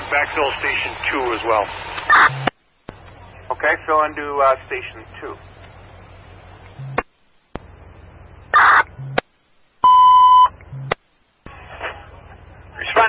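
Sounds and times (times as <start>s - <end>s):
burst of static: 0.0s - 5.5s
low radio static: 0.0s - 13.0s
loud steady beep: 9.8s - 10.9s.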